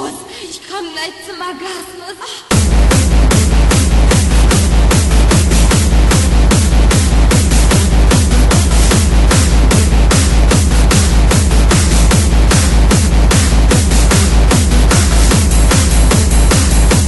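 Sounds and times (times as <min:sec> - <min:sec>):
dense noisy percussion: 0:02.5 - 0:17.0
electronic techno music: 0:02.5 - 0:17.0
pitch-dropping kick drum: 0:02.5 - 0:17.0.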